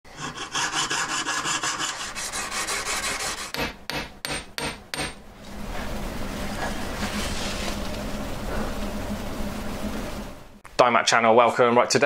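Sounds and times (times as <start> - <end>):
saw rasping through metal: 0.1 - 3.7.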